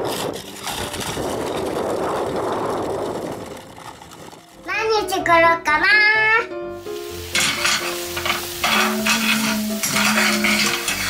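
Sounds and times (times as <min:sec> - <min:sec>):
toy stroller wheels rolling on gravel: 0:00.0 - 0:04.9.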